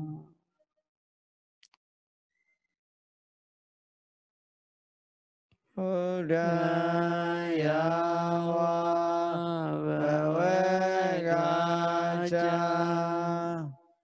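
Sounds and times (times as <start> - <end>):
man chanting: 5.8 - 13.8.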